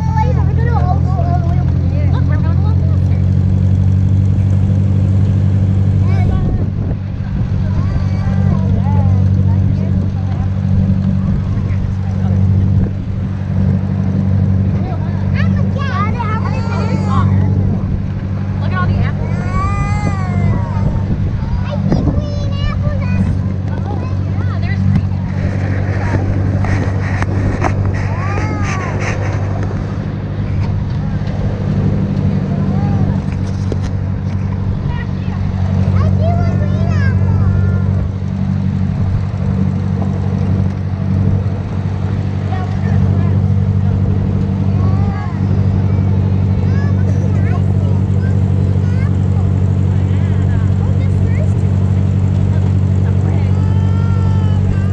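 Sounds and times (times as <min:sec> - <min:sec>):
children's voices: 0:00.0 - 0:54.9
tractor engine droning: 0:00.0 - 0:54.9.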